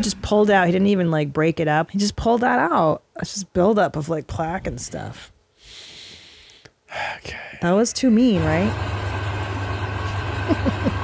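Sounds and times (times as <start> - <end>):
low machine hum: 8.1 - 11.0.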